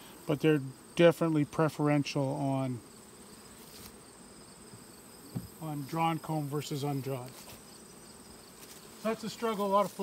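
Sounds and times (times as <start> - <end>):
honeybees buzzing: 0.0 - 10.0
high-pitched insect trill: 2.4 - 10.0.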